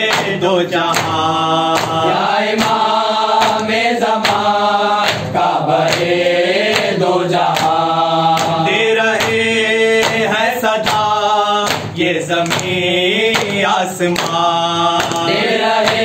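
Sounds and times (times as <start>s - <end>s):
men chanting in unison: 0.0s - 16.0s
hands slapping chest: 0.1s - 9.4s, 10.0s - 16.0s.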